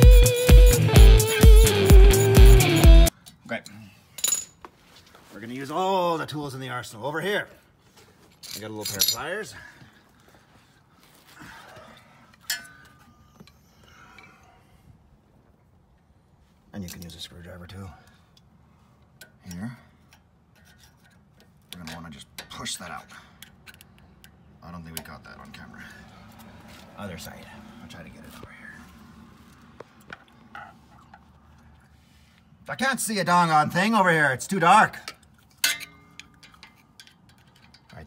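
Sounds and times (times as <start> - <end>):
hand tools clicking and rubbing: 23.3 - 24.4, 35.0 - 38.0
screwdriver clinking on metal: 35.0 - 38.0.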